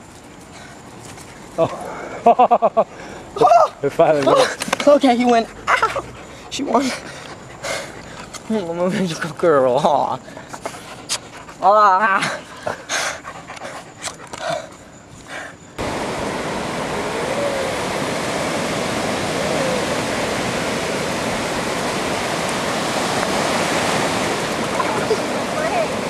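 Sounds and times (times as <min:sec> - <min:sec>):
ocean surf washing on beach: 0:15.8 - 0:26.0.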